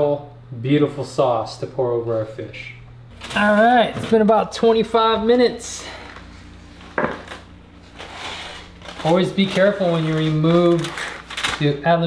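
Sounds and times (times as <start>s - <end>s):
foil rustling: 5.7s - 12.0s
dish knocking on wooden table: 7.0s - 7.2s.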